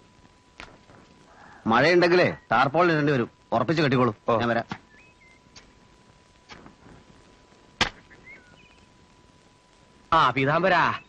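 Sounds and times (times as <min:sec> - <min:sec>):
faint bird chirps: 0:01.3 - 0:02.7, 0:04.8 - 0:05.8, 0:07.9 - 0:09.0, 0:10.7 - 0:11.0.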